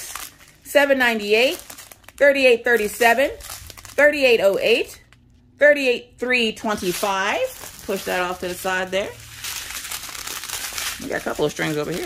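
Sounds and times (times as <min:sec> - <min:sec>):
plastic bags crinkling: 0:00.0 - 0:05.4, 0:06.7 - 0:12.0.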